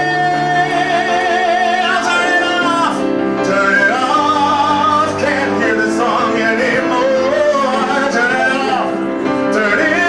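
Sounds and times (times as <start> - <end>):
man singing into a microphone: 0.0 - 10.0
piano accompaniment: 0.0 - 10.0.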